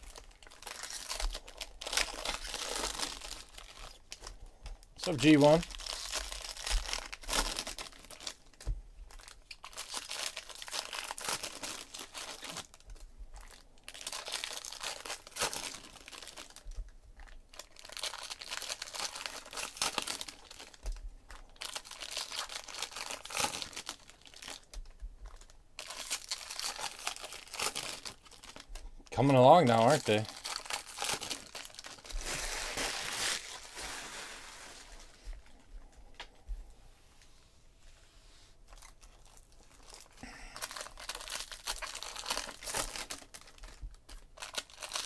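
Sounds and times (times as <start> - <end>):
foil wrappers crinkling and tearing: 0.0 - 35.6, 38.7 - 45.0.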